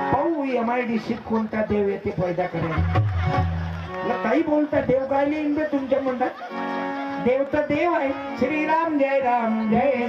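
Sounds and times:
man preaching: 4.1s - 6.4s.

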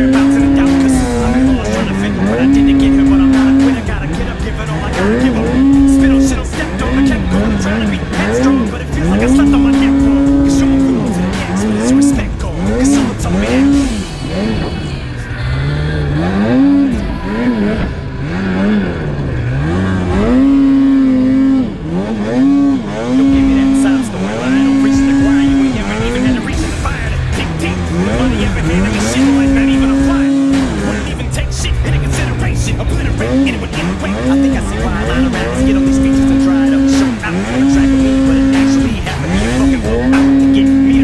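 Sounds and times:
snowmobile engine revving: 0.0s - 41.0s.

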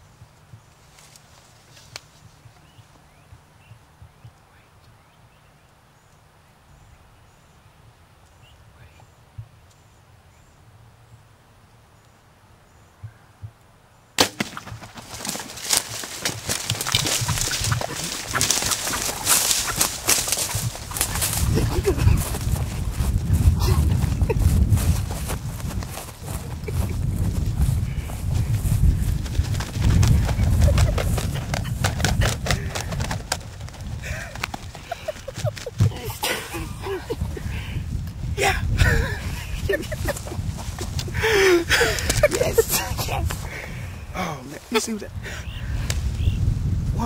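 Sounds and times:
footfalls: 14.2s - 37.3s
grass swishing: 14.5s - 31.8s
wind on microphone: 14.7s - 44.4s, 45.0s - 47.0s.

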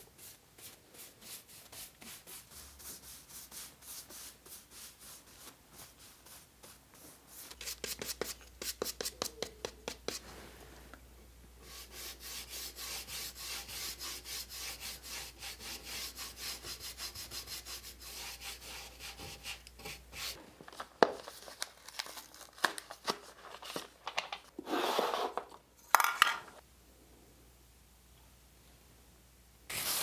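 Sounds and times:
paper rustle: 20.4s - 24.5s.

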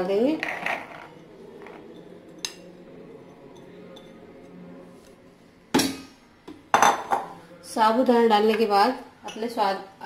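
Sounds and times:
dish clinking: 6.7s - 7.3s.

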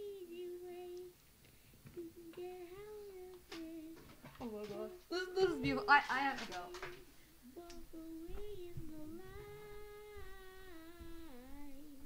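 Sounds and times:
child singing long note: 7.6s - 12.0s.

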